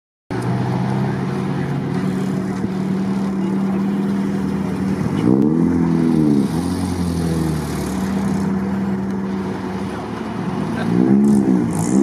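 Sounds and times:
car engine running at low revs: 0.3 - 12.0.

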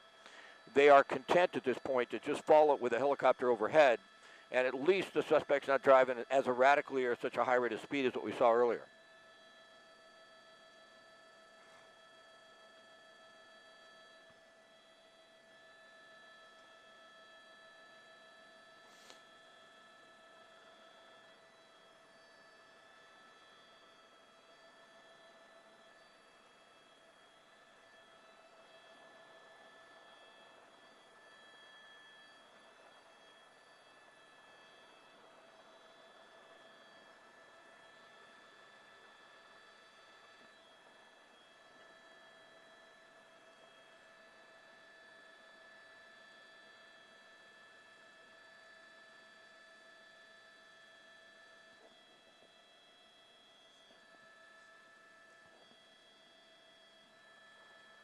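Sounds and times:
thin steady tones: 0.0 - 8.9.

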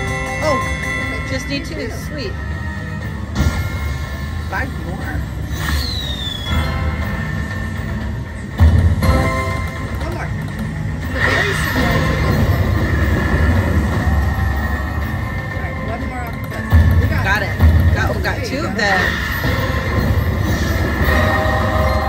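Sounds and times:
slot machine game music: 0.0 - 5.4, 6.7 - 22.0.

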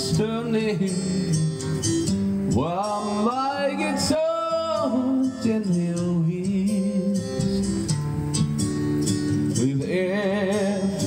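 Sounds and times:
acoustic guitar strumming: 0.0 - 11.0
person singing: 2.5 - 7.9, 9.5 - 11.0
man singing wavering note: 2.6 - 7.8.

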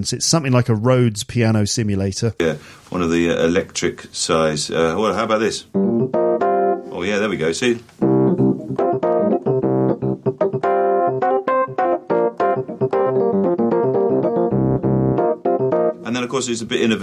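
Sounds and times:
electric piano chords: 5.7 - 16.6.

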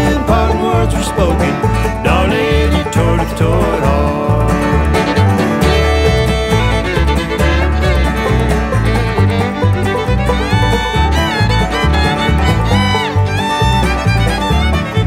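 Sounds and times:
banjo picking: 0.0 - 15.0
bluegrass band playing: 0.0 - 15.0
fiddle: 0.0 - 15.0.

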